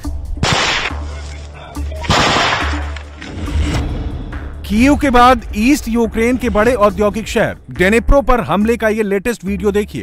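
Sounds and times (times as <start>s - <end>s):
rifle shot: 0.4s - 1.0s, 2.0s - 3.4s.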